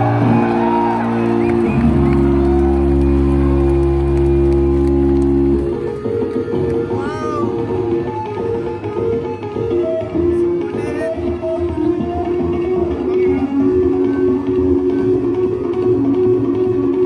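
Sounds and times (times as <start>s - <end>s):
electric bass guitar: 0.0s - 17.0s.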